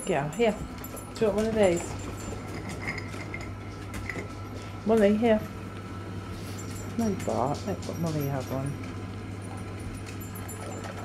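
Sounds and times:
steady low hum: 0.0s - 11.0s
light metallic clinks: 6.5s - 11.0s.

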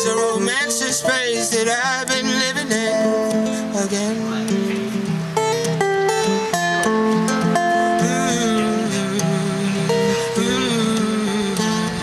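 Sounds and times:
acoustic guitar strumming chords: 0.0s - 12.0s.

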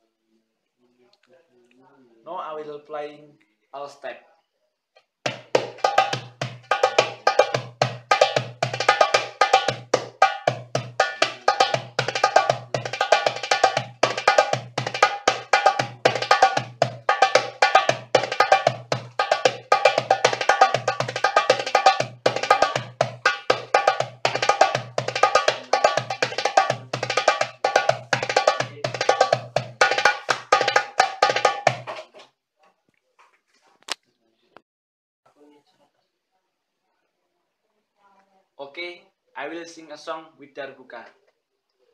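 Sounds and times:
goblet drum played by hand: 5.3s - 32.2s.

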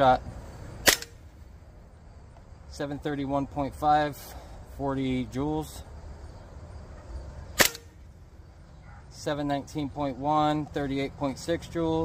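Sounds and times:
air rifle shot: 0.8s - 1.3s, 7.6s - 8.0s.

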